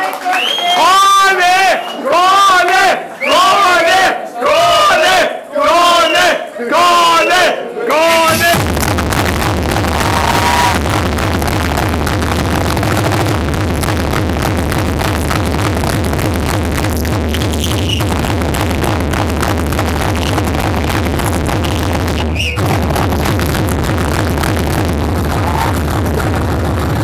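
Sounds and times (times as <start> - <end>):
loud techno music: 8.0 - 27.0
steady bass beat: 8.2 - 27.0.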